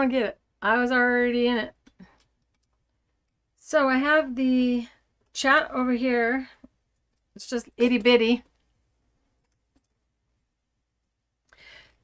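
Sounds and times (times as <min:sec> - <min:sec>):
faint in-breath: 0:11.5 - 0:12.0.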